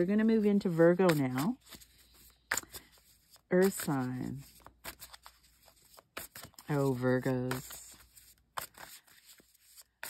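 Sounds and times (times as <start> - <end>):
cards rustling and clicking: 0.0 - 10.0.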